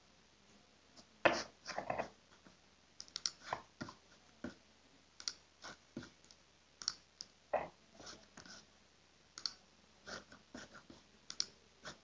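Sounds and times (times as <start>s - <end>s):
faint irregular clicks and taps: 1.0s - 4.6s, 5.2s - 8.7s, 9.3s - 12.0s.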